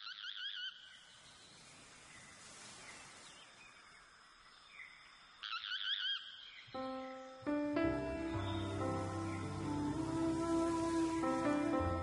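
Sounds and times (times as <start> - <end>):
bird chirps: 0.0 - 10.1
faint outdoor hiss: 0.1 - 12.0
sustained instrument notes: 6.8 - 12.0.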